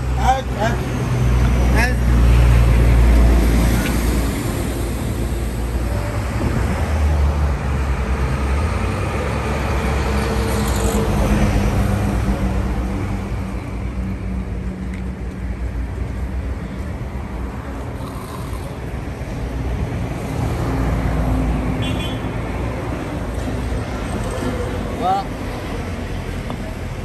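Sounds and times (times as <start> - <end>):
cars passing: 0.0 - 27.0.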